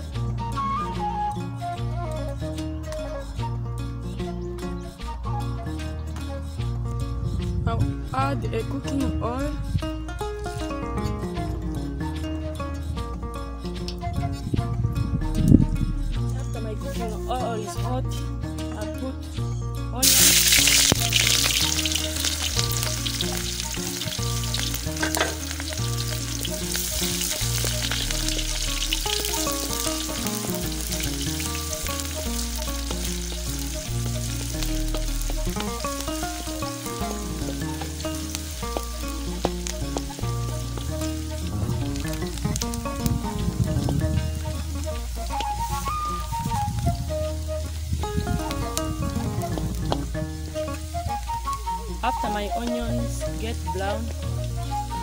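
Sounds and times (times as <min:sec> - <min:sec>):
background music with bass line: 0:00.0 - 0:55.0
wooden spoon stirring in wok: 0:20.0 - 0:46.3
onions sizzling in hot oil: 0:20.0 - 0:55.0.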